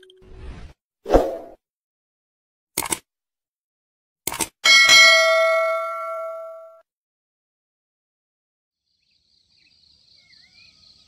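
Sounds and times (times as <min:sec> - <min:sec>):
sharp clicks: 0:02.8 - 0:03.0
bell ding: 0:04.6 - 0:06.8.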